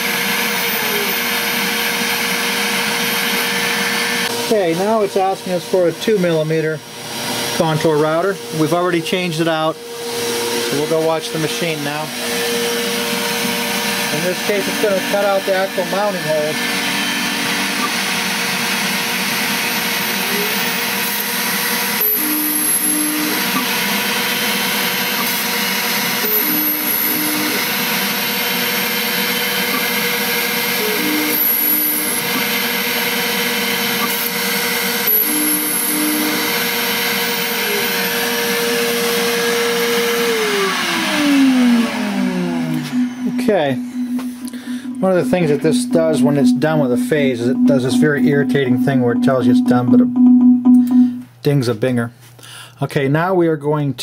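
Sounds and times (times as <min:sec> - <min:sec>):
milling spindle whine: 0:00.0 - 0:06.6, 0:07.5 - 0:50.2
spindle spinning down: 0:19.4 - 0:38.4.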